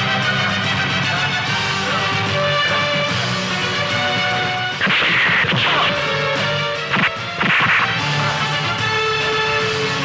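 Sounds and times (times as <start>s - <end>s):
background music: 0.0s - 10.0s
sharp whack: 4.8s - 6.0s, 6.9s - 8.0s.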